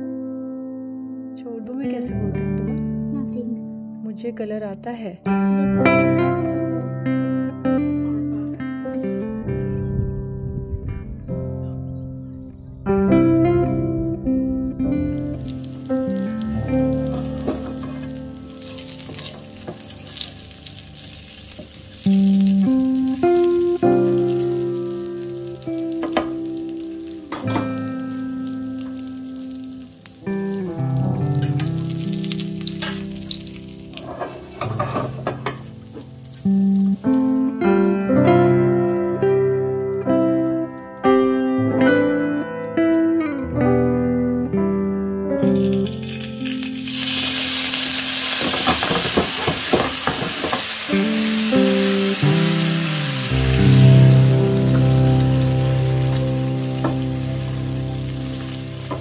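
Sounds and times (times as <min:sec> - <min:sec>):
slow instrumental music: 0:00.0 - 0:59.0
potatoes sizzling in oil: 0:15.1 - 0:37.5, 0:45.4 - 0:59.0.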